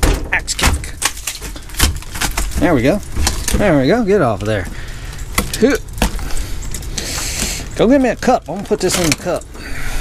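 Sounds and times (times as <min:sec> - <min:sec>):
ice cracking and knocking: 0:00.0 - 0:06.4, 0:07.3 - 0:09.5.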